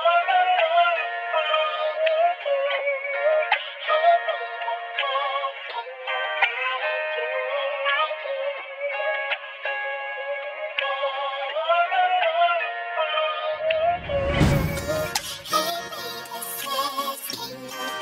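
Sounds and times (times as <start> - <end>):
chopped vocal sample loop: 14.8 - 18.0.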